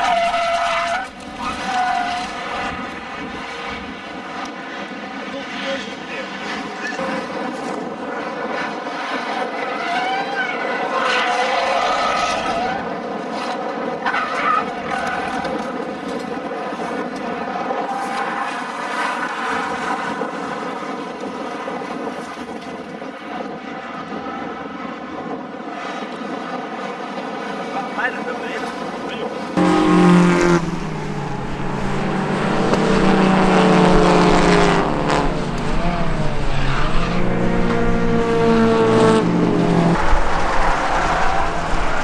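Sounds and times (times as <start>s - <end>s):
race car engines revving: 0.0s - 22.1s, 23.4s - 42.0s
steady droning tone: 29.6s - 38.7s.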